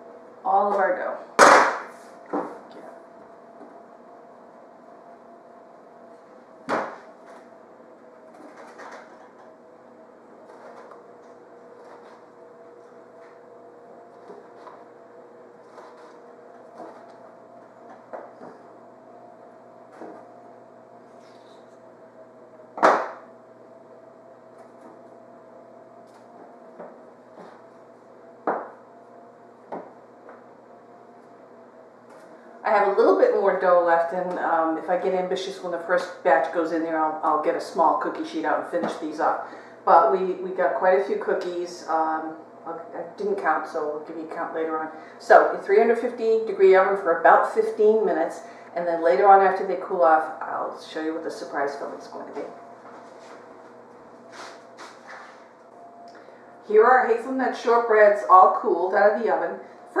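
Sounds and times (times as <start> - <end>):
steady background hum: 0.0 - 60.0.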